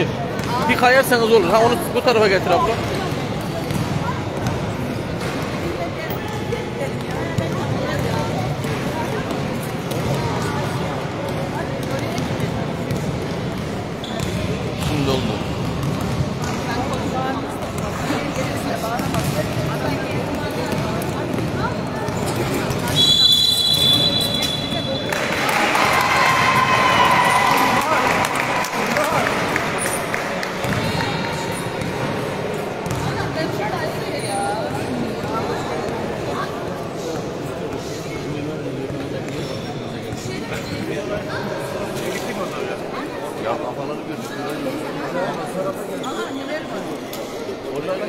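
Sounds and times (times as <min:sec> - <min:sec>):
basketballs bouncing on court: 0:02.7 - 0:25.2, 0:30.6 - 0:33.3.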